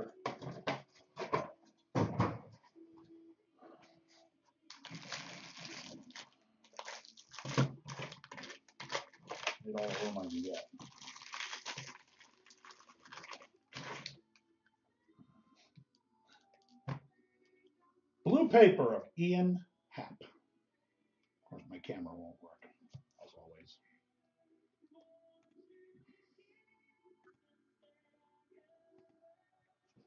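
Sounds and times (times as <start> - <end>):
foil wrappers tearing and crinkling: 4.7 - 14.2.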